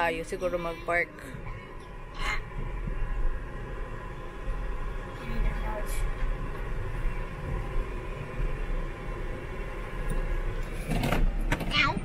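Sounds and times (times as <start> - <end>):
car engine rumble inside cabin: 0.0 - 12.0.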